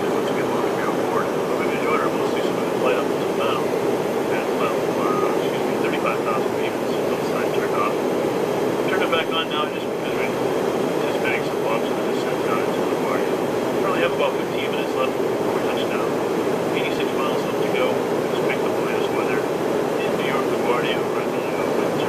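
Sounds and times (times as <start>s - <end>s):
indistinct voices: 0.0s - 3.7s, 4.3s - 7.9s, 8.9s - 10.4s, 11.0s - 16.2s, 16.8s - 19.4s, 20.0s - 22.0s
aircraft cabin roar: 0.0s - 22.0s.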